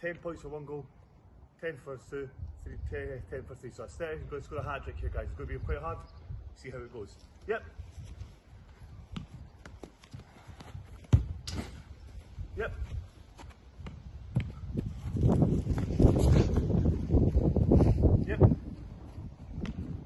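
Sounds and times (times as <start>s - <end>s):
footsteps on grass: 7.3s - 18.1s
football thuds: 9.1s - 12.0s, 12.8s - 17.4s.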